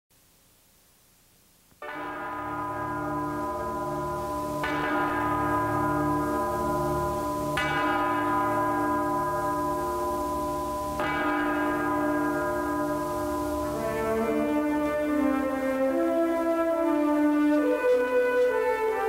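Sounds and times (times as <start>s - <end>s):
deep bell chime: 1.8s - 16.2s
sustained low drone: 2.7s - 19.0s.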